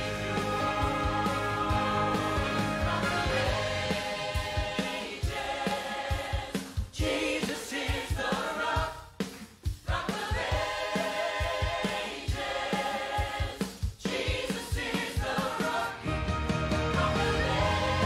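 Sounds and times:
choir singing a hymn: 0.0 - 9.1, 9.8 - 18.0.

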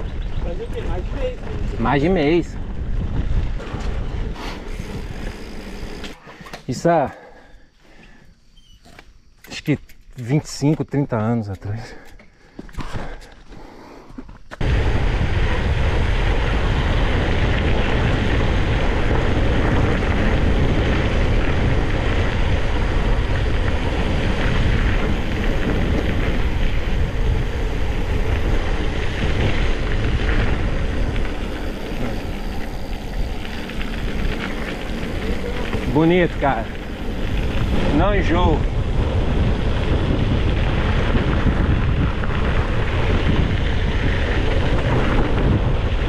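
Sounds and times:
wind on microphone: 0.0 - 6.2, 14.6 - 46.0
bike tyre rumble on dirt: 0.0 - 9.2, 11.7 - 46.0.

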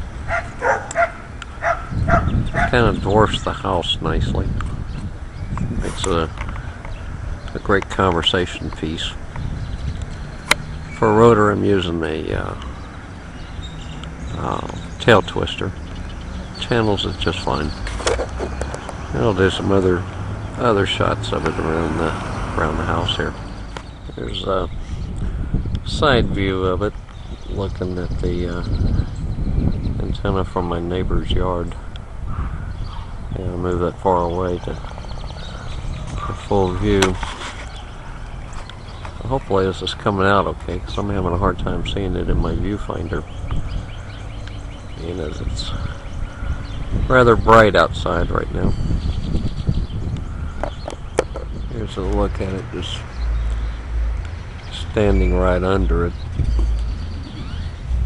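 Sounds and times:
low outdoor rumble: 0.0 - 58.0
low rumble: 51.4 - 58.0.

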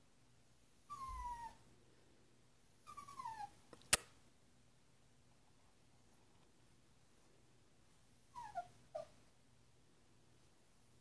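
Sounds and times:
puppy whining: 0.8 - 1.6, 2.8 - 3.6, 8.3 - 9.2
sharp click: 3.8 - 4.2.

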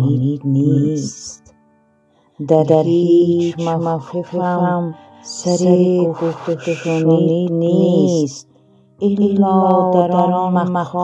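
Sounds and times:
person chanting verse: 0.0 - 1.4, 2.4 - 11.0.

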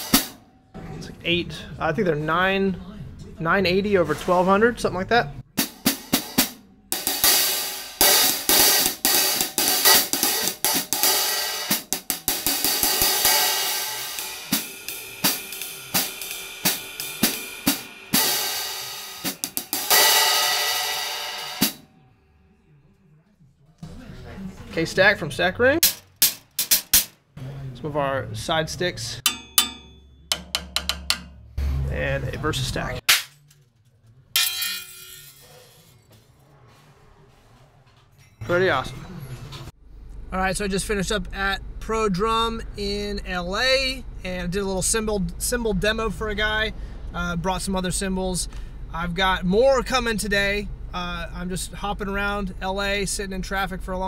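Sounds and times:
hi-hat cymbals played: 0.0 - 0.4, 5.6 - 21.8.

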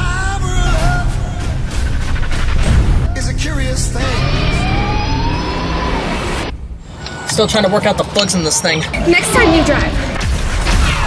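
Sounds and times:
low rumble: 0.0 - 7.2
racing vehicle whine: 3.2 - 10.2.

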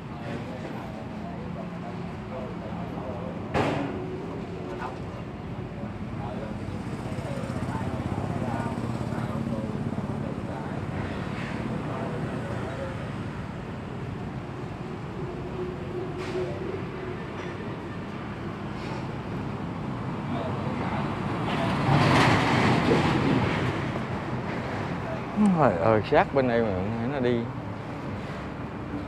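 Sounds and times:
road traffic noise: 0.0 - 29.0.

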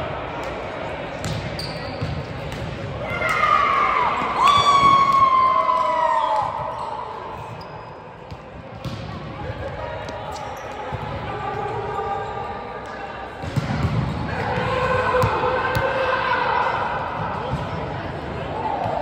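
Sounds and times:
players' voices: 0.0 - 19.0.

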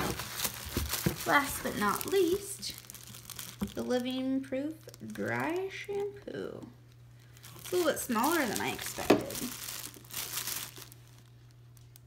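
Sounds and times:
plastic bag crinkling: 0.0 - 6.2, 6.8 - 12.0.

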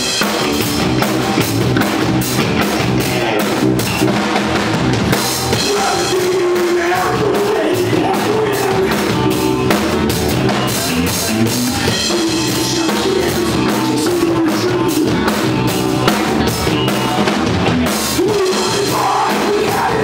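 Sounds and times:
driving drum kit: 0.0 - 20.0
electric guitars: 0.0 - 20.0
rock band playing live: 0.0 - 20.0.

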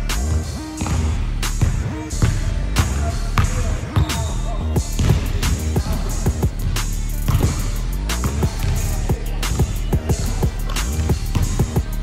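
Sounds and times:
background music with beat: 0.0 - 12.0
basketball bouncing on hardwood floor: 5.0 - 5.3, 7.3 - 7.6.

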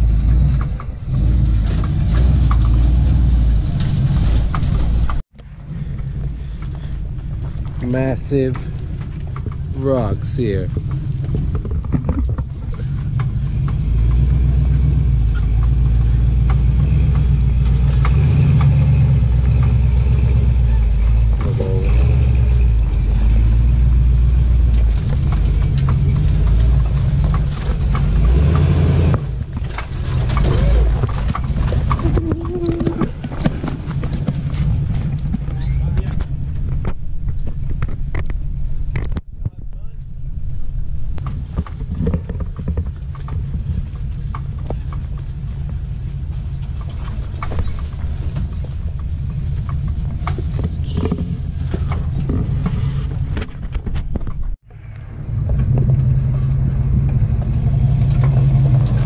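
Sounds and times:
truck engine rumble: 0.0 - 59.0.

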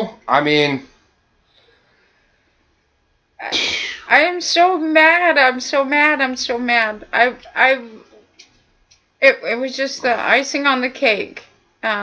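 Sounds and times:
woman's breathy vocal burst: 3.4 - 4.1.

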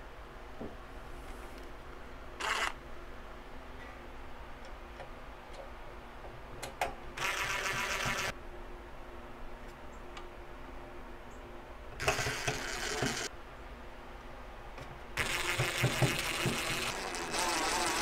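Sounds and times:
cordless drill running: 2.4 - 2.8, 7.2 - 8.3, 12.0 - 13.3, 15.2 - 18.0.

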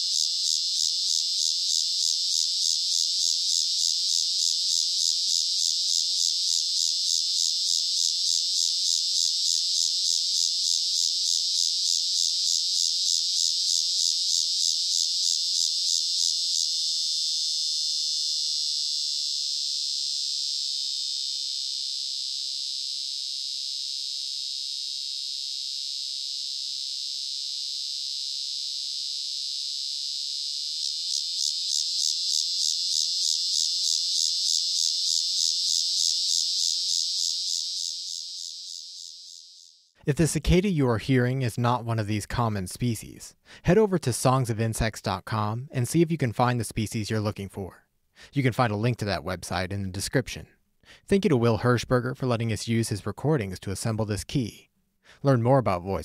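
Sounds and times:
cicada buzzing: 0.0 - 40.0.

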